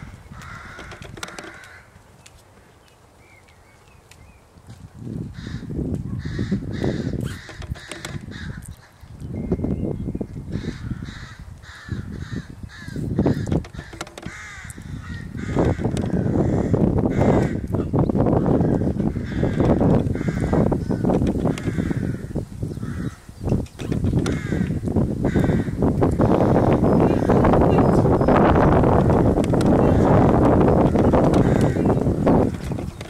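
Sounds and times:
crows cawing: 0.0 - 2.0, 5.3 - 9.0, 10.5 - 23.4, 24.1 - 33.0
wind rumble on microphone: 0.0 - 33.0.

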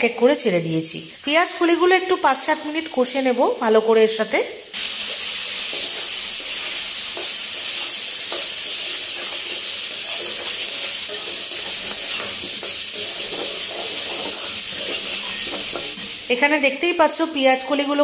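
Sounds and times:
food sizzling in hot oil: 0.0 - 18.0
metal spatula scraping pan: 5.0 - 16.3.

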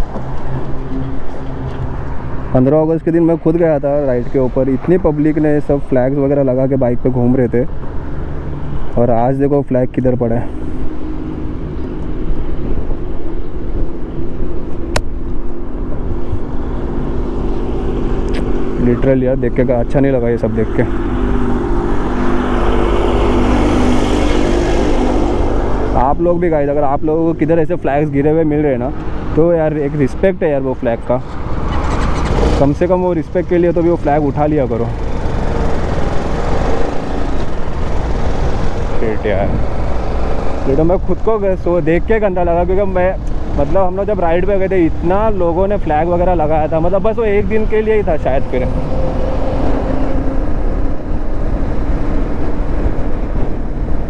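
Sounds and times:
motorcycle engine and road rumble: 0.0 - 54.0
wind noise on microphone: 35.0 - 41.2, 48.2 - 54.0.

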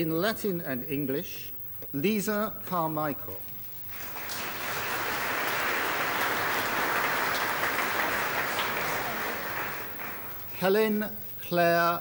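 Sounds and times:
audience applauding: 3.9 - 11.1.

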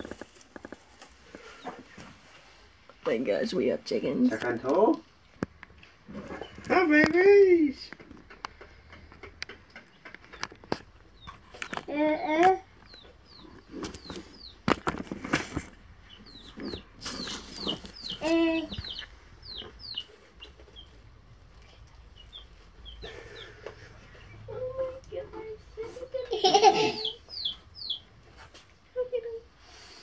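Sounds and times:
baby chicks peeping: 0.0 - 2.4, 5.7 - 30.0.

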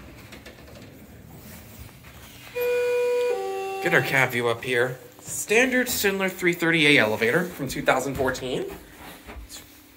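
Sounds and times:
elevator arrival chime: 2.6 - 4.5.

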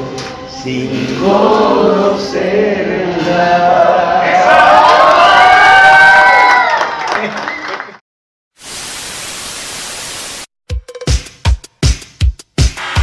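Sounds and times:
men singing unaccompanied: 0.1 - 4.5
crowd cheering: 3.7 - 8.0
steady static hiss: 8.6 - 10.5.

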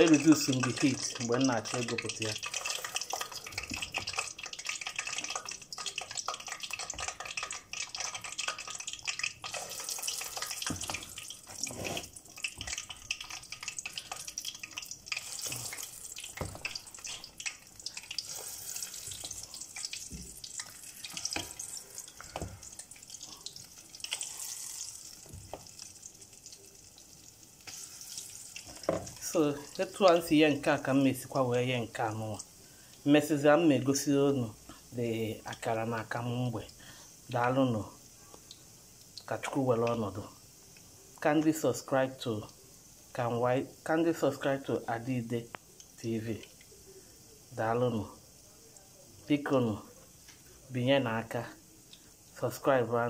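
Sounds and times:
fritters sizzling in hot oil: 0.0 - 53.0.

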